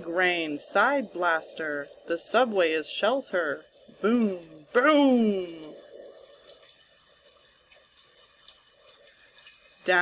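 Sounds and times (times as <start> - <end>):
steady rain: 0.0 - 10.0.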